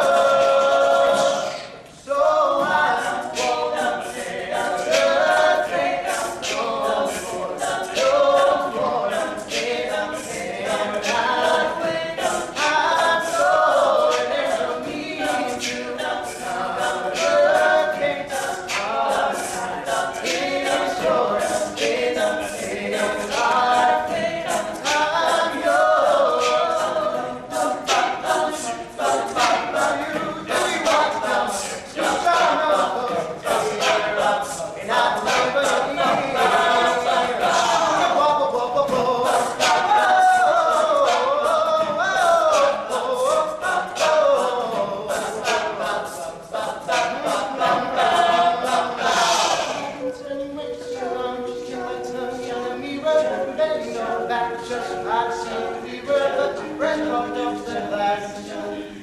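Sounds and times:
male group singing in harmony: 0.0 - 59.0
sharp percussive hits: 2.6 - 50.0.

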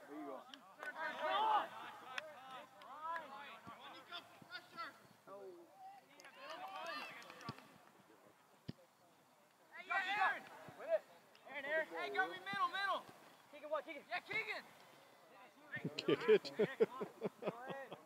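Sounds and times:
people shouting and calling out: 0.0 - 7.7, 9.7 - 14.8.

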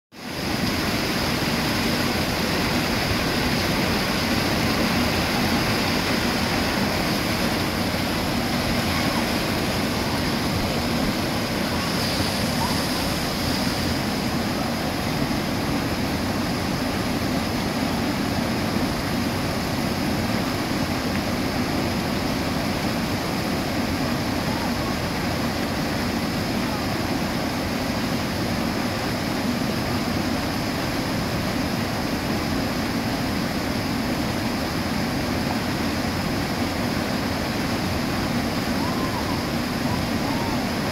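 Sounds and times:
water rushing through rapids: 0.2 - 40.9.

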